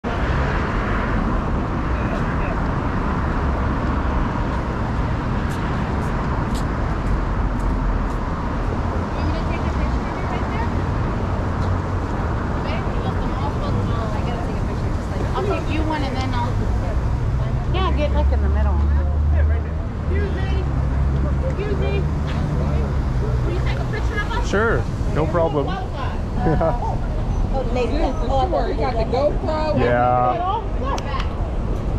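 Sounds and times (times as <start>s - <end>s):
street traffic rumble: 0.0s - 31.9s
faint voices of passers-by: 0.1s - 31.9s.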